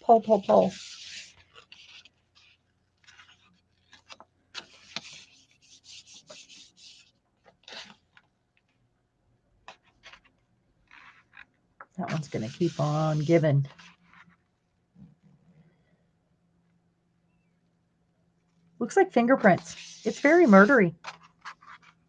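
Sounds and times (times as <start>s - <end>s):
paper rubbing: 0.0s - 8.0s, 10.9s - 14.4s, 19.4s - 22.0s.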